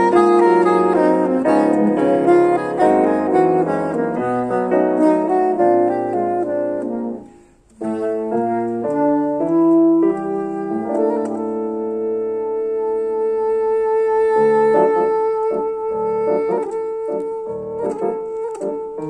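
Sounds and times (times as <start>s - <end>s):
grand piano accompaniment: 0.0s - 19.0s
soprano saxophone melody: 0.0s - 19.0s.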